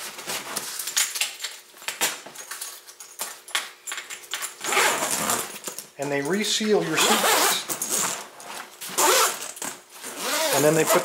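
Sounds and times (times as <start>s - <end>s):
suitcase zipper rasping and clicking: 4.6s - 5.6s, 7.0s - 8.2s, 8.9s - 11.0s.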